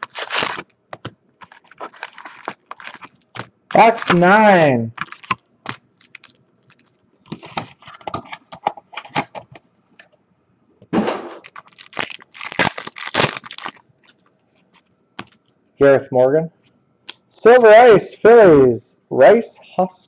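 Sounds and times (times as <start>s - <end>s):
wrappers torn and crinkled: 0.0s - 4.3s, 5.0s - 7.1s, 11.4s - 14.3s.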